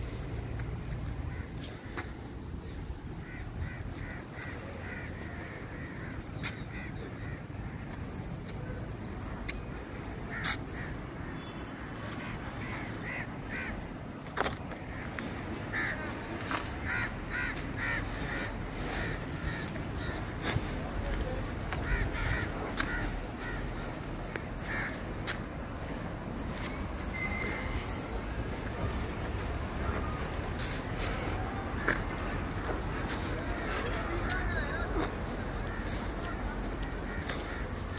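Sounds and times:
low outdoor rumble: 0:00.0 - 0:37.9
crows cawing: 0:01.1 - 0:08.2, 0:10.3 - 0:11.6, 0:12.6 - 0:13.9, 0:14.9 - 0:26.0, 0:31.3 - 0:37.9.

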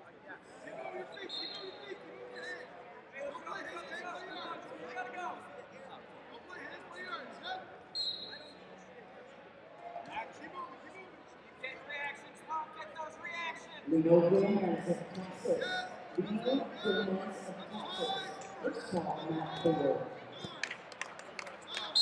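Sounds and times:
indistinct voices in an arena: 0:00.0 - 0:22.0.

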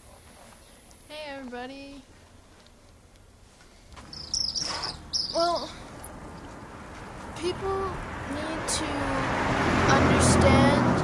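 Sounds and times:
high-pitched insect buzzing: 0:04.1 - 0:05.4.

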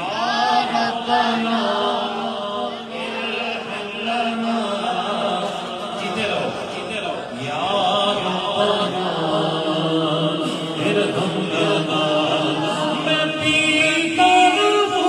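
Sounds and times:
man chanting into a microphone: 0:00.0 - 0:15.0.

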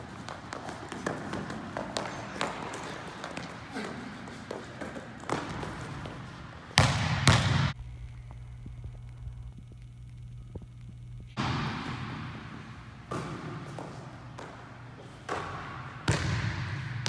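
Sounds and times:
low steady hum: 0:06.2 - 0:16.2
basketball bouncing on hardwood: 0:06.8 - 0:07.7, 0:15.3 - 0:16.7.

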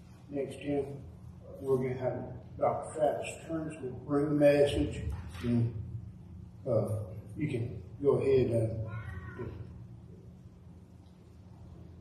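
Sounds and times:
steady low hum: 0:00.0 - 0:12.0
man saying uh into microphone: 0:06.7 - 0:08.9.

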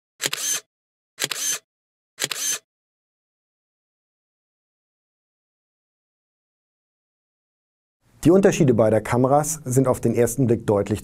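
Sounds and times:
camera shutter double click: 0:00.2 - 0:02.7.

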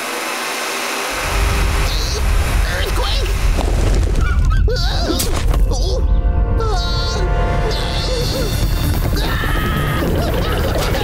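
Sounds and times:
rolling boulders rumble: 0:01.2 - 0:05.8
action music: 0:05.2 - 0:11.0
man screaming in panic: 0:06.6 - 0:10.2.

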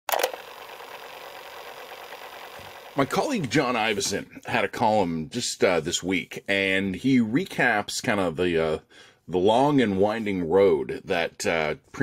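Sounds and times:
faint mechanical whir of reels: 0:00.1 - 0:03.1.

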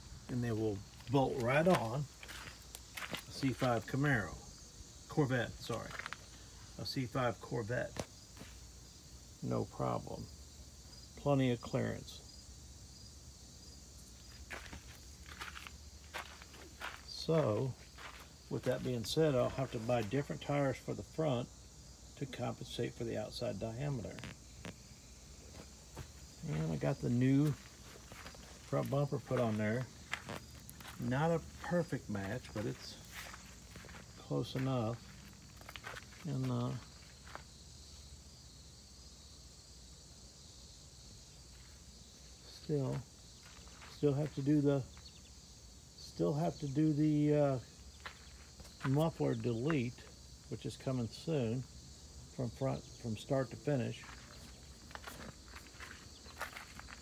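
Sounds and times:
insects chirring: 0:00.0 - 0:57.0
footsteps on gravel: 0:00.2 - 0:04.4, 0:05.5 - 0:06.4, 0:07.9 - 0:08.6, 0:14.2 - 0:20.4, 0:25.4 - 0:37.6, 0:42.7 - 0:45.0, 0:47.9 - 0:49.8, 0:53.9 - 0:57.0.

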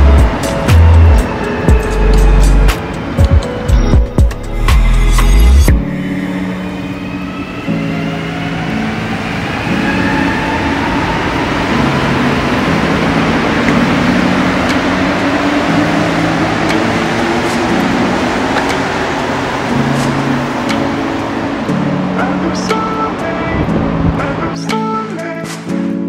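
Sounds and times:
train cars rumbling past: 0:00.0 - 0:05.0, 0:05.8 - 0:25.7
background music: 0:00.0 - 0:26.0.

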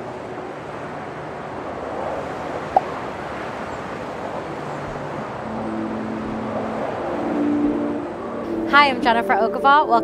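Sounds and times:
distant city traffic hum: 0:00.0 - 0:10.0.

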